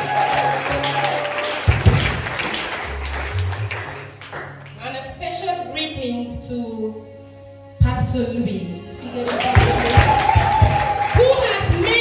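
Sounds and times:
woman speaking into a microphone: 4.8 - 7.0, 11.1 - 12.0.

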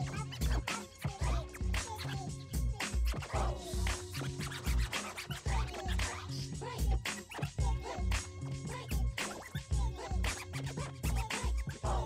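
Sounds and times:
music beat with heavy bass: 0.0 - 12.0
vinyl record scratching: 0.0 - 12.0.

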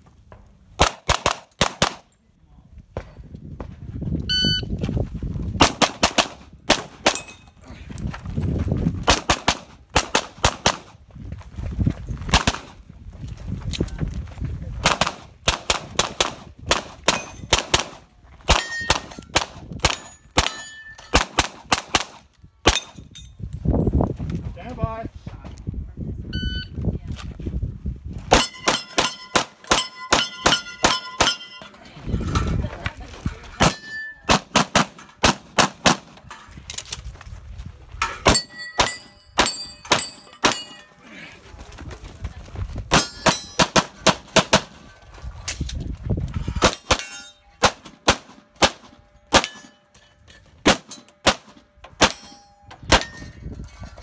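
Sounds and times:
pistol shots: 0.8 - 2.0, 5.6 - 7.3, 14.8 - 23.0, 28.3 - 31.5, 33.6 - 36.2, 46.6 - 49.7, 50.6 - 53.2
steel targets ringing: 20.0 - 21.2, 28.4 - 31.8, 33.6 - 34.3, 38.0 - 41.0, 46.6 - 47.7, 49.0 - 51.2, 52.0 - 53.4.

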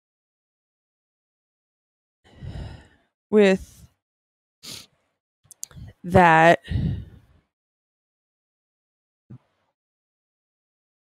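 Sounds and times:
soft breath: 2.3 - 3.1, 6.7 - 7.4
person talking: 3.4 - 3.8, 5.5 - 6.7
sharp mouth clicks: 5.5 - 5.9.

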